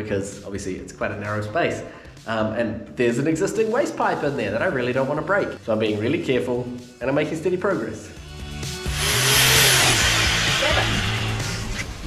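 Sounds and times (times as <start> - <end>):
background music: 0.0 - 12.0
hammer drill boring masonry: 8.9 - 11.4.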